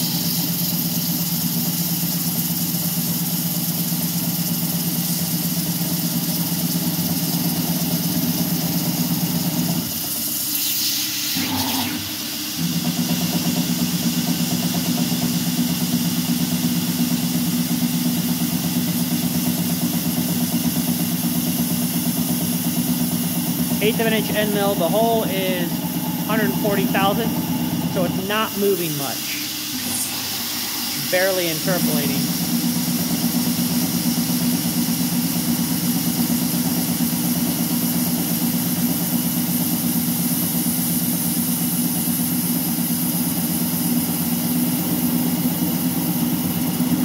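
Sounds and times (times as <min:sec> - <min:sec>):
coolant spray hiss: 0:00.0 - 0:47.0
milling spindle cutting metal: 0:24.0 - 0:32.4.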